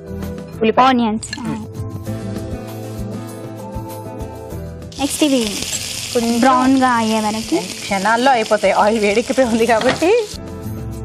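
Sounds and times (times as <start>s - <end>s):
background music with singing: 0.0s - 4.9s
onions sizzling in hot oil: 4.9s - 10.4s.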